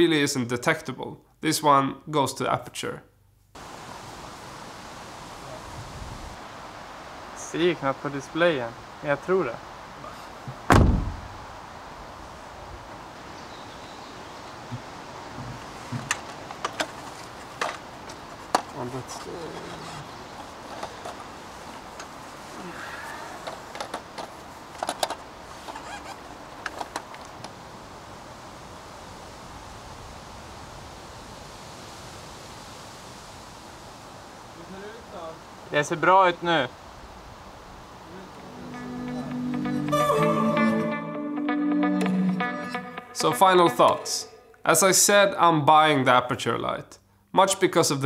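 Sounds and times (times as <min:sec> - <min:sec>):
steady low hiss: 0:00.0 - 0:48.0
heavy thump: 0:10.5 - 0:11.4.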